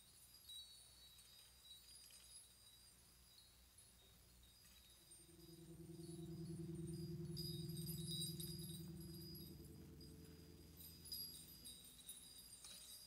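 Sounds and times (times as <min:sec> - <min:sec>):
shimmering metallic chimes: 0:05.0 - 0:13.0
low sustained note: 0:05.2 - 0:12.1.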